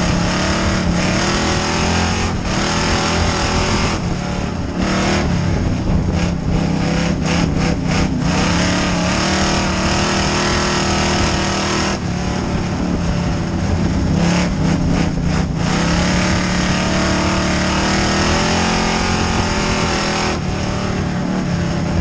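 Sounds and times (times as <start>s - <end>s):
race car engine running hard: 0.0s - 22.0s.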